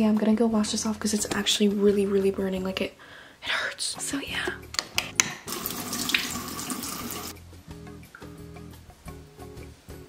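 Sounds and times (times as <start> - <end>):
background music: 0.0 - 10.0
tap water running into sink: 5.5 - 7.4.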